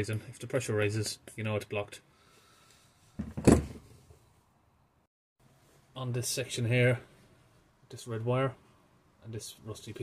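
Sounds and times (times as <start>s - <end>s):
plastic tubing and kit clattering: 3.2s - 4.0s.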